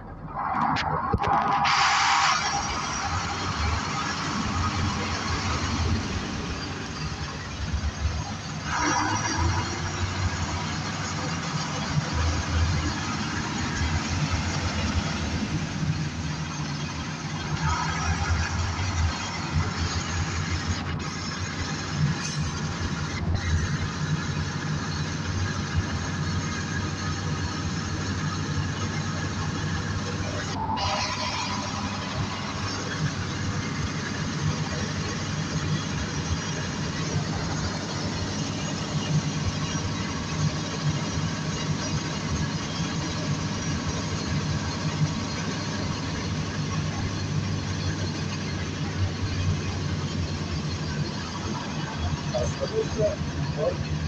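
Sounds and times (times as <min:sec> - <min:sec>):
bus engine droning: 0:00.0 - 0:54.0
road noise: 0:00.0 - 0:54.0.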